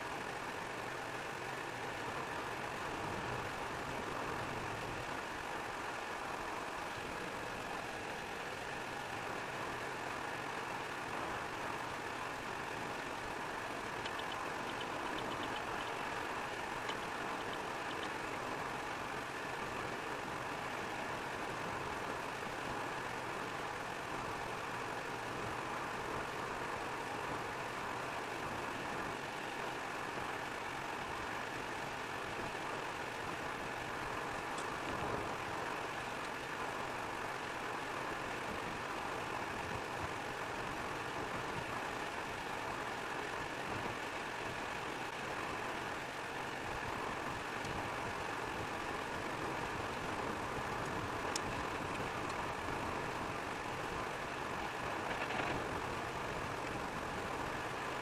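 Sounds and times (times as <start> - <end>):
car engine running: 0.1 - 58.0.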